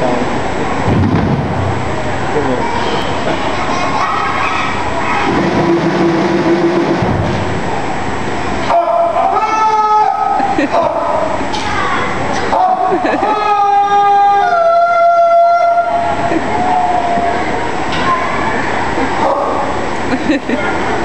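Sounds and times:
audience murmur: 0.0s - 8.0s, 14.4s - 21.0s.

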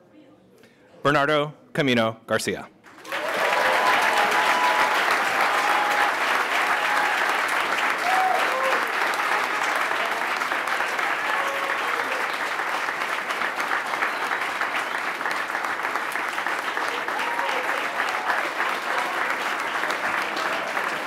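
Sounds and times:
audience applauding: 2.9s - 21.0s
short cheering voices: 3.0s - 13.1s, 15.6s - 21.0s.

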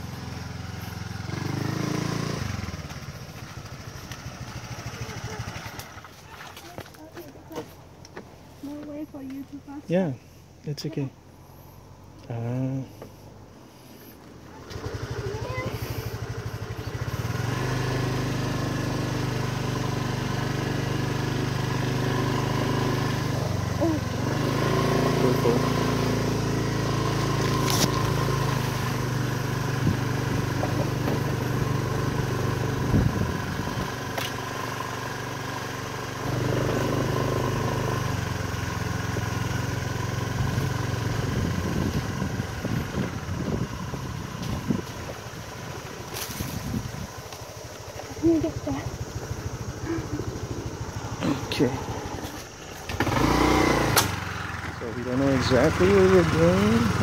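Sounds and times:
motorcycle rattling over rough ground: 0.0s - 10.1s, 10.7s - 57.0s
small motorcycle engine running: 0.0s - 57.0s.

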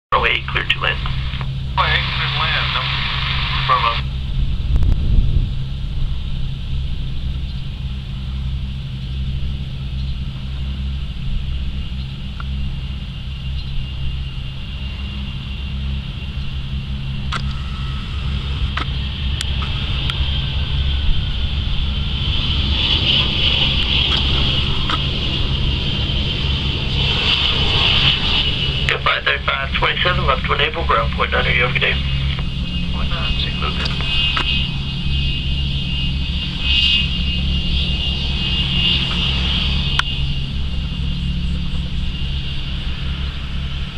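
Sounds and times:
jet engine rumble and whine: 0.1s - 43.9s.

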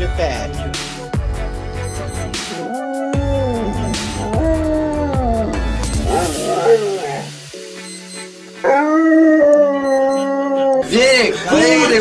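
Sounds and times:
background music: 0.0s - 12.0s
dog howling: 2.6s - 7.4s, 8.6s - 11.0s.

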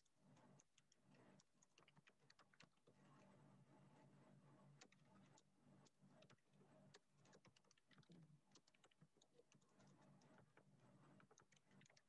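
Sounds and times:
typing on computer keyboard: 0.6s - 2.8s, 6.2s - 10.6s, 11.2s - 12.0s.

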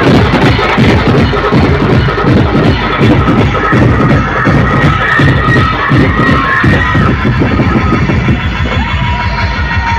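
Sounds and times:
heavy steady drum beat: 0.0s - 9.9s.

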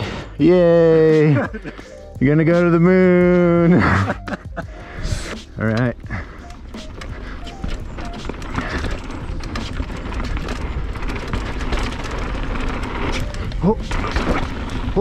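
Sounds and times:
bike clicks and rattles: 0.0s - 15.0s
bike tyres rumbling on gravel: 4.7s - 15.0s.

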